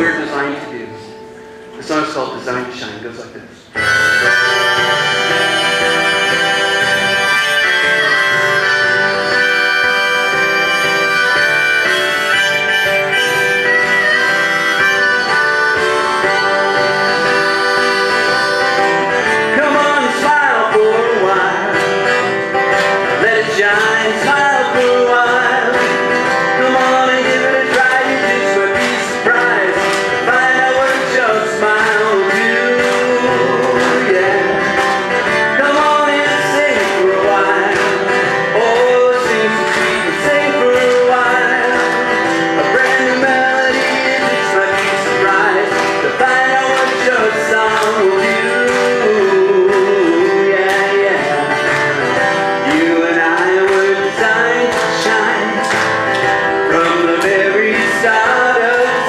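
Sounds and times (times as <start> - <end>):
acoustic guitar strumming: 0.0 - 59.0
harmonica: 3.7 - 59.0.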